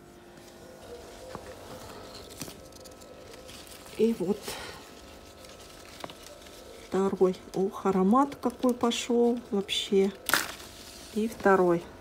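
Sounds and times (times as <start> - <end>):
low steady hum: 0.0 - 12.0
rustling leaves and branches: 0.2 - 7.7.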